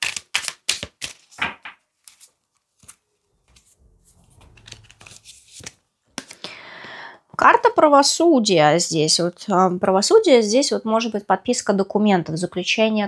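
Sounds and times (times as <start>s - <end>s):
cards rustling: 0.0s - 1.4s, 2.0s - 6.4s
cards snapping while shuffled: 0.0s - 1.4s.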